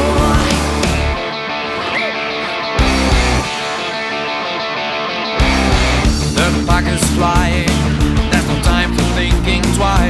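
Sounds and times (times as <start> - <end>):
rock song on electric guitar: 0.0 - 10.0.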